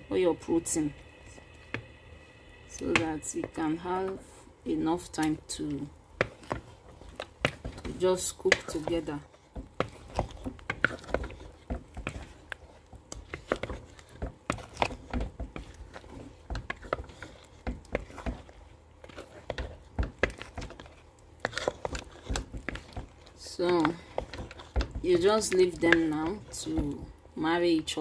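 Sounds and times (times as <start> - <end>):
soup boiling in a pot: 0.0 - 28.0.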